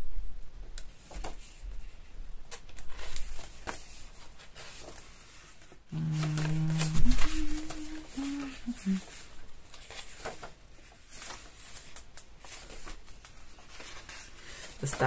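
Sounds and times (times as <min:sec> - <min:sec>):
paper pages rustling and flipping: 0:00.8 - 0:15.0
person humming: 0:05.9 - 0:09.2.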